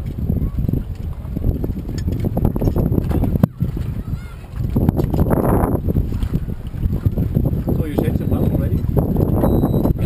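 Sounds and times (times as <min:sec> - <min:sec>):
water sloshing against boat hull: 0:00.0 - 0:10.0
wind buffeting microphone: 0:00.0 - 0:10.0.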